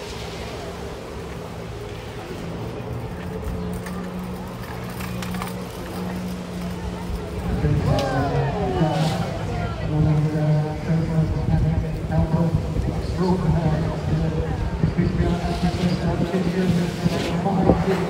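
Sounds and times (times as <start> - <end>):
jet ski engine drone: 0.0 - 18.0
voices: 0.0 - 18.0.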